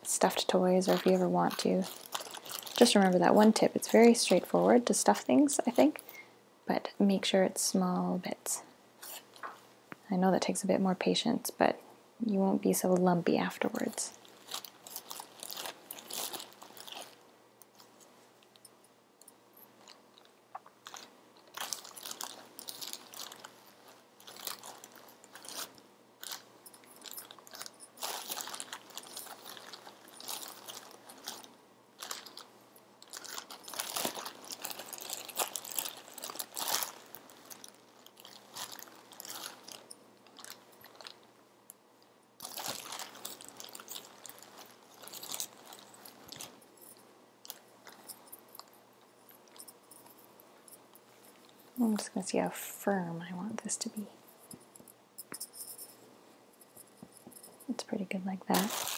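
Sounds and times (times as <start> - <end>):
plastic bag crinkling: 0.0 - 6.2, 13.4 - 17.2, 19.8 - 41.3, 42.4 - 50.3, 58.5 - 58.9.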